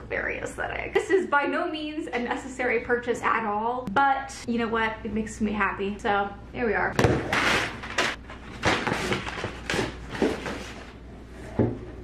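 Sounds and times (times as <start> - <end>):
cardboard flaps rustling: 7.0 - 11.0.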